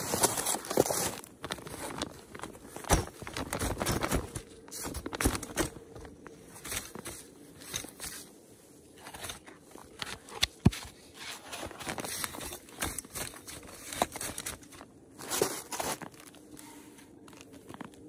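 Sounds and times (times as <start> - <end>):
folding chair fabric rustling: 0.0 - 18.0.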